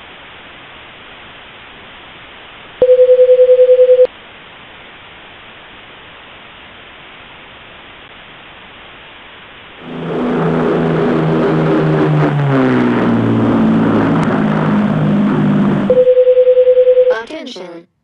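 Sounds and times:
static hiss: 0.0s - 2.9s, 4.1s - 9.9s
low-flying airplane passing: 9.8s - 15.9s.

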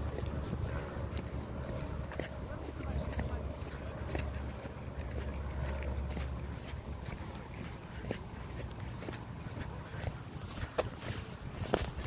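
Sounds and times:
footsteps on paved path: 0.0s - 12.0s
wind buffeting microphone: 0.0s - 12.0s.

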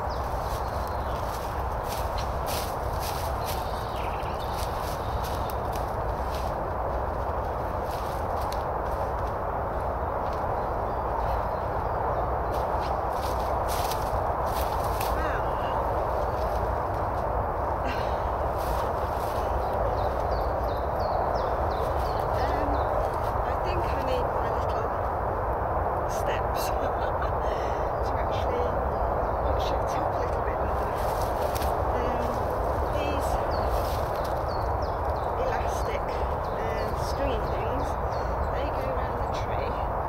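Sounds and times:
footsteps on dry leaves: 0.0s - 11.7s, 12.3s - 24.9s, 30.2s - 38.5s.

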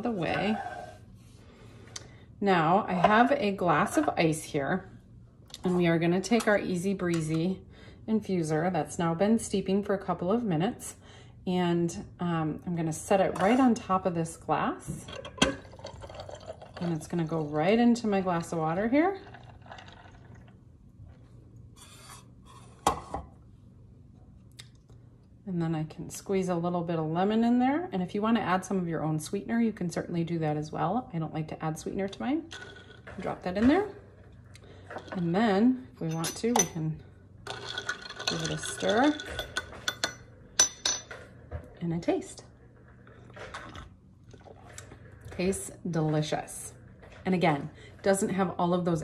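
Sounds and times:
tea trickling into glass of ice: 15.6s - 16.9s
person slurping a drink: 43.1s - 45.0s.

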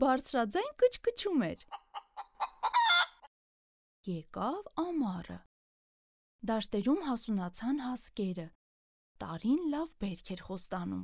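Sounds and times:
hen clucking: 1.6s - 3.3s.

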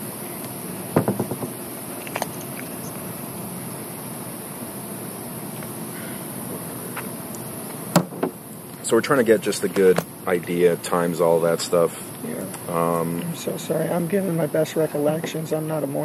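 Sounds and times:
background hiss: 0.0s - 16.0s
clatter of knocks: 1.0s - 1.5s.

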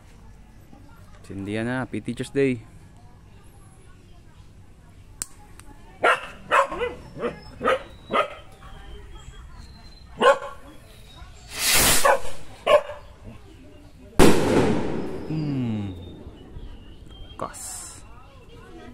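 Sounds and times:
dog barking: 6.0s - 8.5s, 10.2s - 10.6s, 12.0s - 13.1s
rocket launching whoosh: 11.5s - 12.1s, 14.2s - 15.3s
firework bang echoing: 14.2s - 15.3s.

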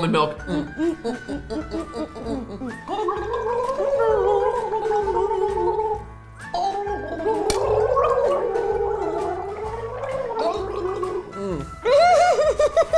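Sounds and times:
background music with steady beat: 0.0s - 12.9s
person gargling: 1.4s - 12.0s.

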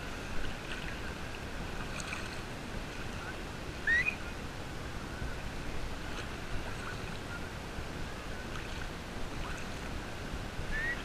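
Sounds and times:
distant beach voices: 0.0s - 11.0s
sea water lapping: 0.0s - 11.0s.

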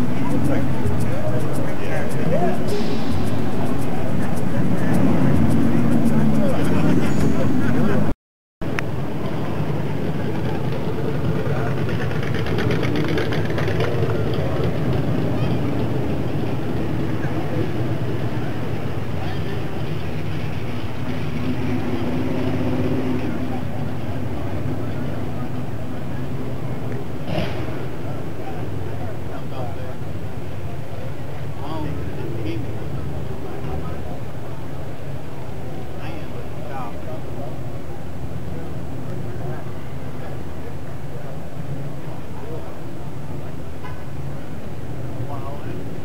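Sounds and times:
car engine idling: 0.0s - 8.1s
faint voices: 0.0s - 46.0s.

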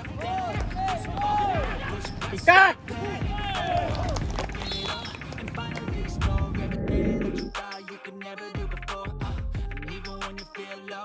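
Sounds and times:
players shouting calls: 0.2s - 5.5s
music playing: 1.1s - 8.4s.

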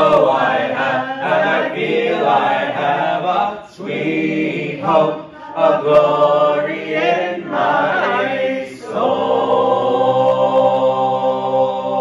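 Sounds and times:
group singing in close harmony: 0.0s - 12.0s.

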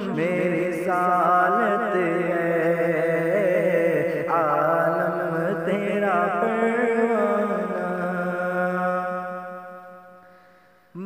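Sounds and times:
person singing unaccompanied: 0.0s - 9.0s.

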